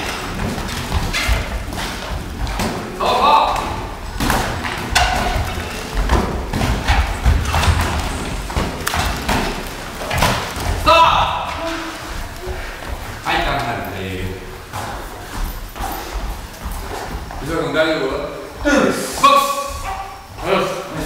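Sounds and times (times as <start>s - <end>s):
feet moving on ring canvas: 0.0s - 21.0s.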